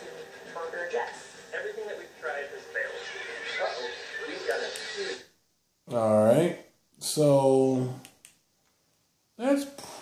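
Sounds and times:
man talking on television: 1.4 - 8.1, 9.4 - 10.0.

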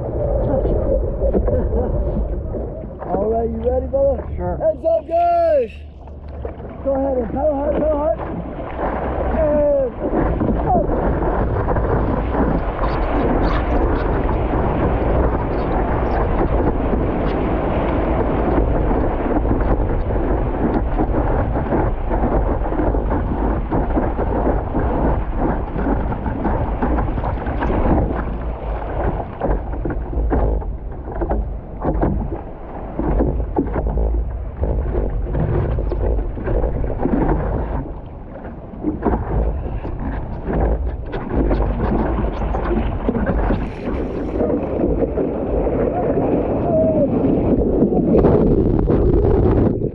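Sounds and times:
water rushing and splashing: 0.0 - 49.9
wind buffeting microphone: 0.0 - 49.9.

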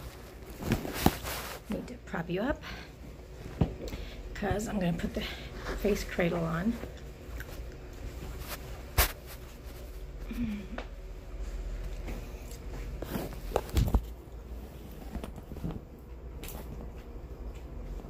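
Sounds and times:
room fan humming: 0.0 - 18.0.

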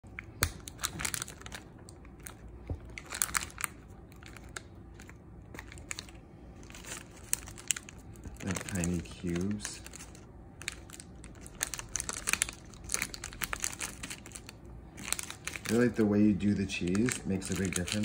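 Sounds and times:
foil crinkling and crackling: 0.1 - 18.0.

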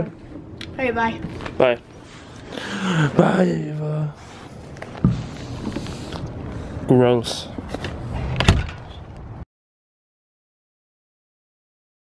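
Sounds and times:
door shutting: 8.2 - 9.0.

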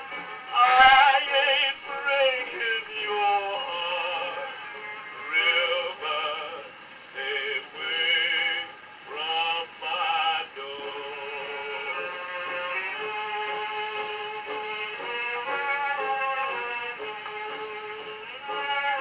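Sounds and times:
man singing with orchestra: 0.4 - 16.6.

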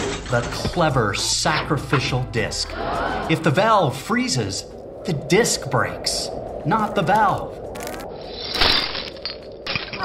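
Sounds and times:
ice cracking and shattering: 7.2 - 10.0.

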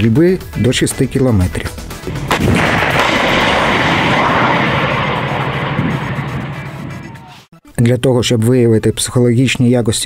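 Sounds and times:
missile rocket rush: 2.0 - 7.5.

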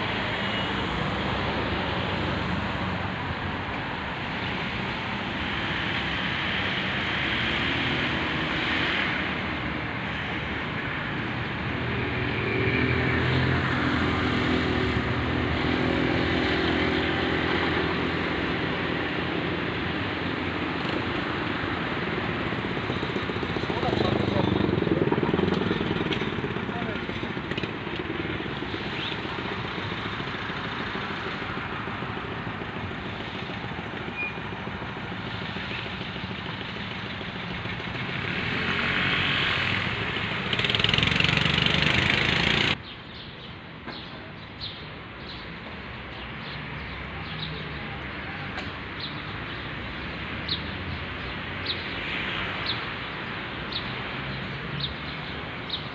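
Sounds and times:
vehicle passing by: 0.0 - 42.8
outdoor traffic noise: 0.0 - 55.9.

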